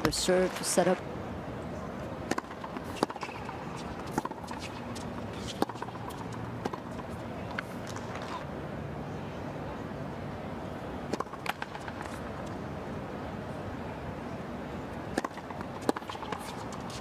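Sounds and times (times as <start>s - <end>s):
tennis ball struck by rackets: 2.2s - 8.4s, 11.1s - 12.2s, 15.1s - 17.0s.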